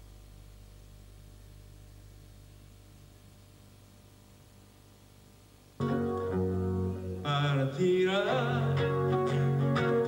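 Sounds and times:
nylon-string acoustic guitar: 5.8 - 10.0.

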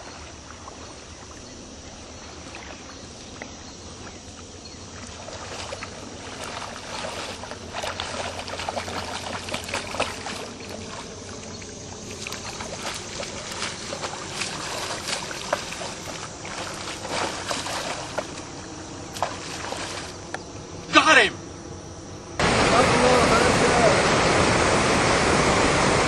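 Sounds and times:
fish thrashing in water: 0.0 - 20.3
wading through shallow water: 0.0 - 24.5.

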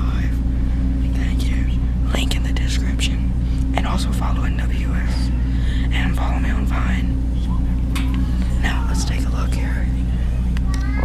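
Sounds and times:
hushed whispering voices: 0.0 - 11.0
steady low hum: 0.0 - 11.0.

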